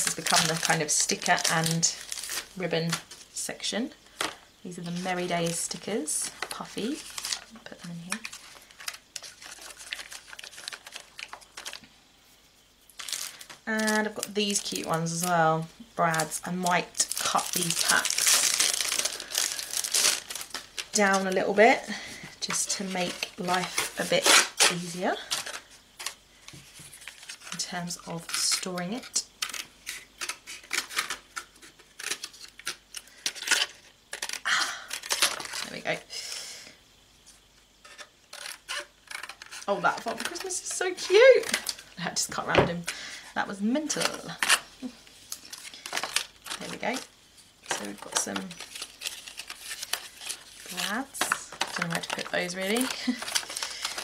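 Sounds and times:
plastic packs clicking and crinkling: 0:00.0 - 0:03.2, 0:04.2 - 0:11.9, 0:12.9 - 0:15.4, 0:16.0 - 0:35.8, 0:37.9 - 0:41.8, 0:45.3 - 0:54.0.

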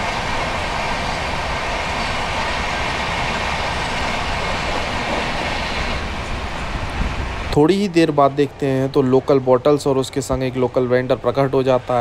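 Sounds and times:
rushing air: 0:00.0 - 0:07.8
train wheels on rail: 0:00.0 - 0:09.3.

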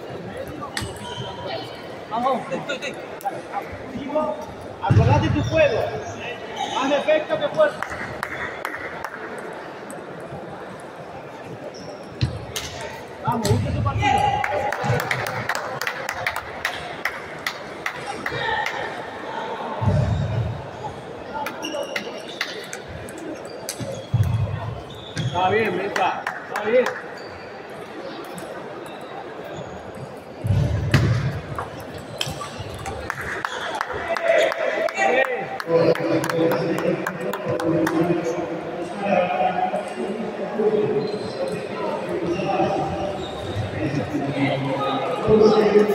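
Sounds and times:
people's voices: 0:27.6 - 0:45.9.

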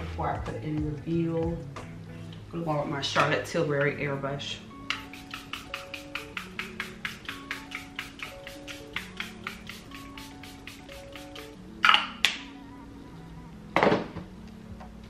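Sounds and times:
background music with clicking beat: 0:04.7 - 0:12.6
spray bottle hissing: 0:04.9 - 0:11.6.

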